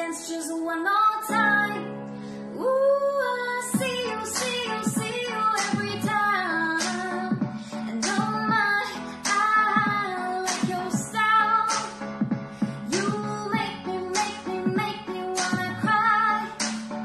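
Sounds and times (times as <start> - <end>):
woman singing pop song: 0.0 - 17.0
instrumental backing: 3.7 - 17.0.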